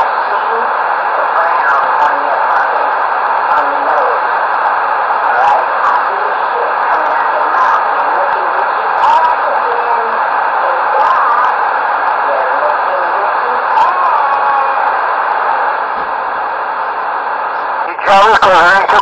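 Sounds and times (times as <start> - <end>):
radio static hiss: 0.0 - 19.0
faint unintelligible voices: 5.2 - 19.0.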